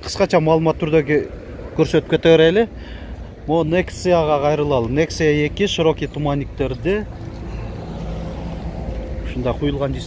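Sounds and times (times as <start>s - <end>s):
vehicle engines rumbling: 0.0s - 10.0s.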